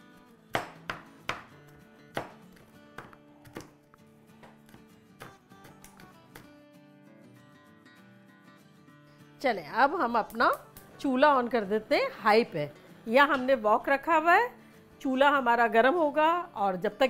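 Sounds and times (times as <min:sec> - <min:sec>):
soft background music: 0:00.0 - 0:17.0
knife chopping on cutting board: 0:00.6 - 0:01.5, 0:02.1 - 0:03.8.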